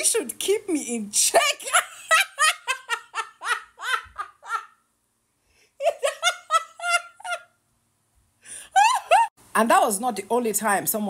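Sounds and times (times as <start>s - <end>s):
woman laughing hard: 1.6s - 4.8s, 5.8s - 7.5s, 8.6s - 9.3s.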